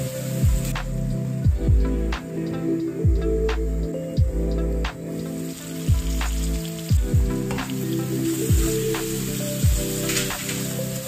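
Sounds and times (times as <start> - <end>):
onions sizzling in a pan: 0.0 - 1.4, 5.1 - 11.0
background music with held chords: 0.0 - 11.0
deep drum hits: 1.5 - 2.0, 5.9 - 7.6.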